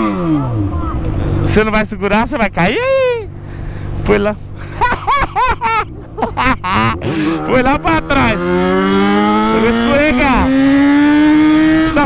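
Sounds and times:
motorcycle riding hum: 0:00.0 - 0:12.0
person laughing: 0:04.6 - 0:07.8.

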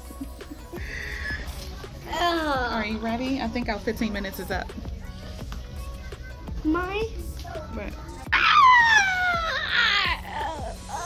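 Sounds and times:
boy squealing: 0:08.3 - 0:11.0.

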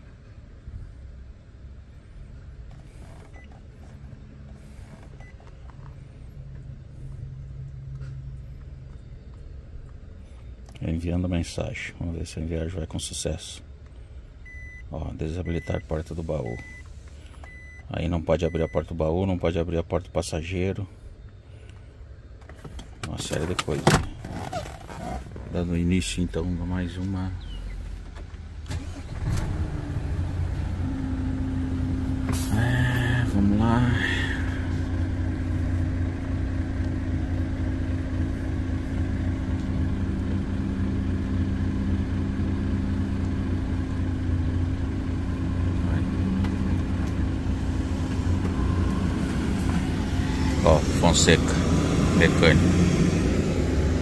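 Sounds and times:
low steady hum: 0:00.0 - 0:54.0
truck diesel engine idling: 0:29.8 - 0:54.0.

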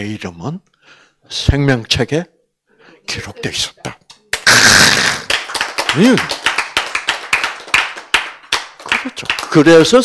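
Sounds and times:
audience clapping: 0:04.1 - 0:10.0.

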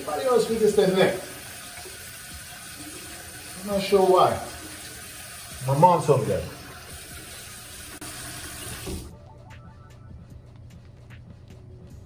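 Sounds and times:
sink tap running: 0:00.0 - 0:09.1.

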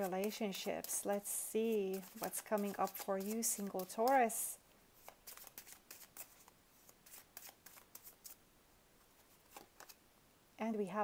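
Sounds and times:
cards being shuffled: 0:00.0 - 0:04.3, 0:05.0 - 0:08.4, 0:09.1 - 0:10.0.

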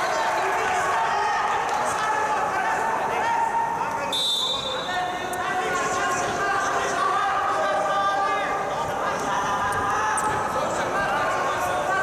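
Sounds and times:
crowd chatter: 0:00.0 - 0:12.0
referee's whistle blast: 0:04.1 - 0:05.2.

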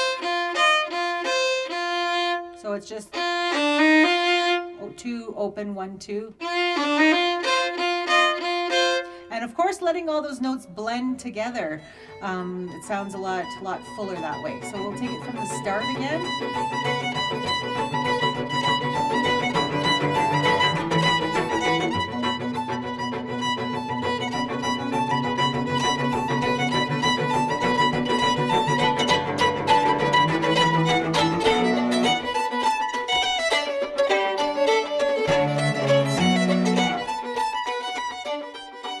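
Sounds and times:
fiddle playing a tune: 0:00.0 - 0:39.0
lower accompanying notes: 0:12.2 - 0:39.0.

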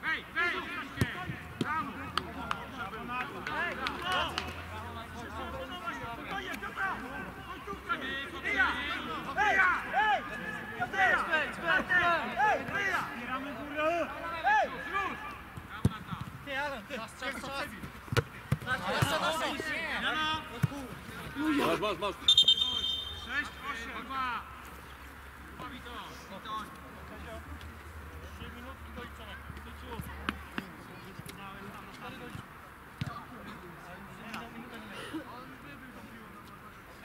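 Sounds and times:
players shouting and calling: 0:00.0 - 0:37.0.

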